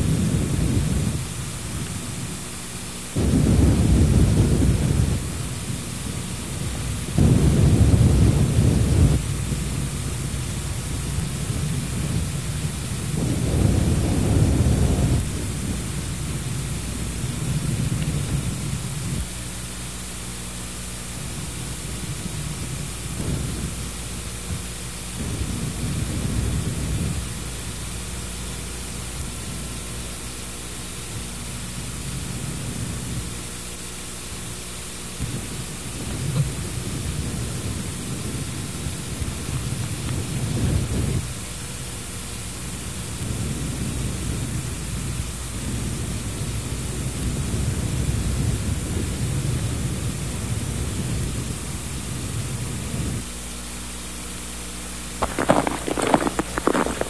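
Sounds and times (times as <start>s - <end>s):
wind buffeting microphone: 0.0s - 2.5s, 3.2s - 19.4s, 21.2s - 29.8s, 35.2s - 41.4s, 43.0s - 53.2s, 55.2s - 57.0s
steady hiss: 0.0s - 57.0s.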